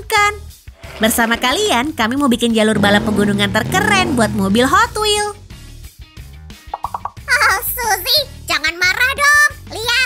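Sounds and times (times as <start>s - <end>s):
background music: 0.0s - 10.0s
plopping sound effects: 6.7s - 7.2s.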